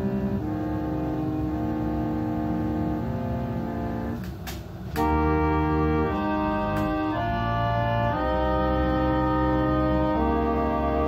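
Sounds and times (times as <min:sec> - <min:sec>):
organ playing slow chords: 0:00.0 - 0:11.0.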